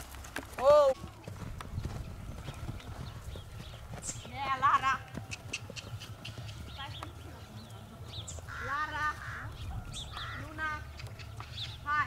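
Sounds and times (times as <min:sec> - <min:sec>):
small birds chirping: 0:01.2 - 0:12.0
geese honking: 0:07.8 - 0:10.8.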